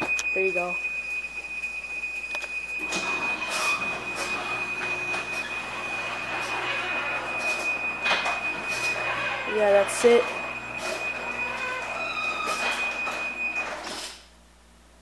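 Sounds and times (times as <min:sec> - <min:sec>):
thin high whine: 0:00.0 - 0:14.0
garage door opener motor humming: 0:02.7 - 0:14.2.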